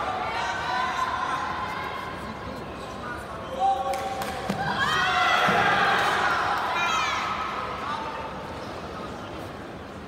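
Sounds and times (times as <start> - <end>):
crowd yelling and cheering: 3.6 - 7.8.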